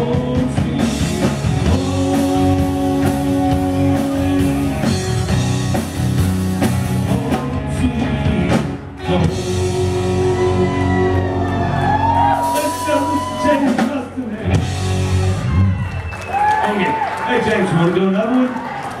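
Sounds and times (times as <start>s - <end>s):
live rock band playing: 0.0s - 16.4s.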